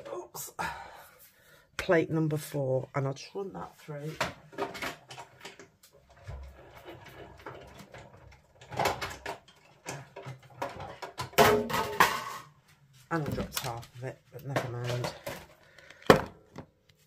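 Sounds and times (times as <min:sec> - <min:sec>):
knocks and clicks of plates: 0:04.2 - 0:12.6.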